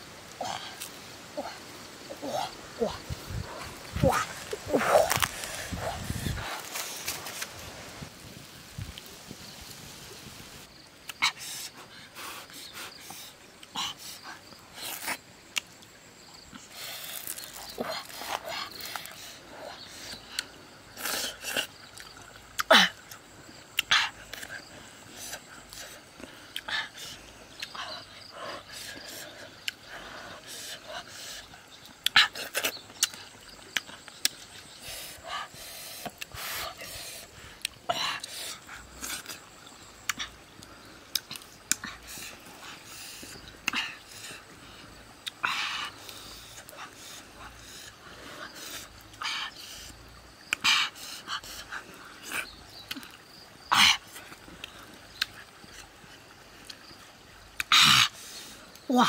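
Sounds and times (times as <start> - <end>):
wet chewing and lip-smacking: 40.0 - 42.0, 54.6 - 55.9.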